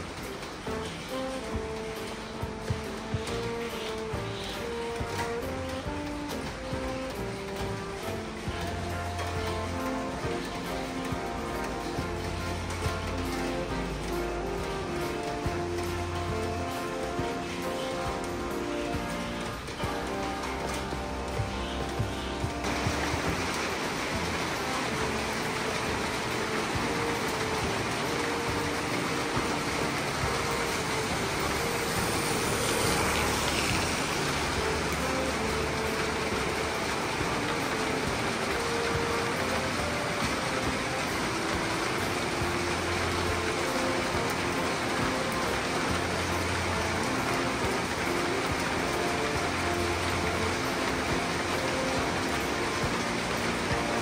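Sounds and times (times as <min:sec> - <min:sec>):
rain on wet pavement: 0:00.0 - 0:54.0
soft background music: 0:00.0 - 0:54.0.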